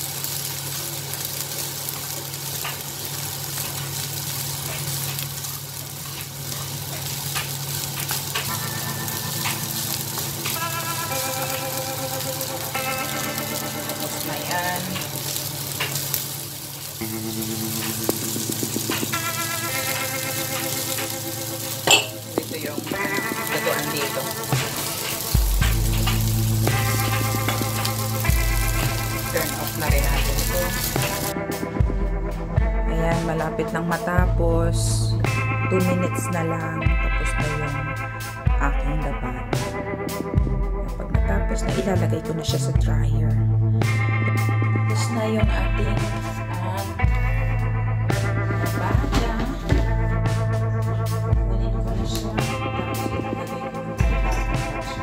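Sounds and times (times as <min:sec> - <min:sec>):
food sizzling in a frying pan: 0:00.0 - 0:55.0
background music with bass line: 0:06.3 - 0:55.0.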